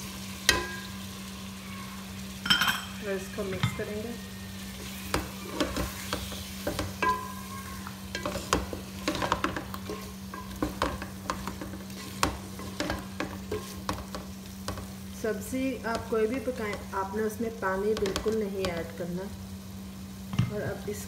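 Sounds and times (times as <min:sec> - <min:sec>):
vegetables frying in oil: 0:00.0 - 0:21.0
wooden spoon scraping a pot: 0:04.7 - 0:15.0
spoon knocking against pot: 0:05.1 - 0:07.4, 0:08.1 - 0:14.8.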